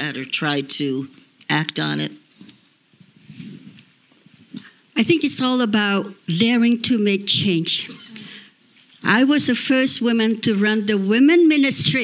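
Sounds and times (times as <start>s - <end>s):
woman speaking: 0.0s - 2.2s, 5.0s - 8.1s, 9.0s - 12.0s
faint microphone rustle: 2.2s - 5.1s.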